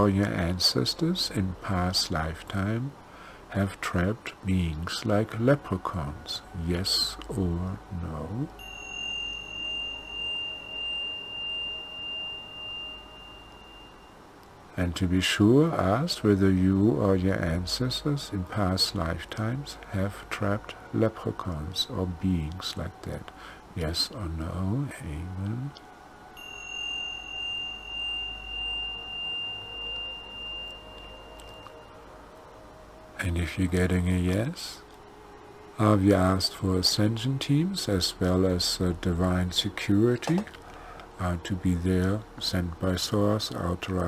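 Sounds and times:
high pure ringing tone: 0.0 - 4.2, 4.8 - 44.0
low pulsing hum: 0.0 - 39.8.

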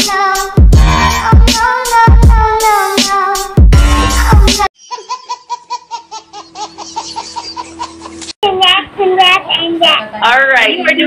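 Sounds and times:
music: 0.0 - 4.7
high-pitched pulsing laughter: 4.8 - 8.3.

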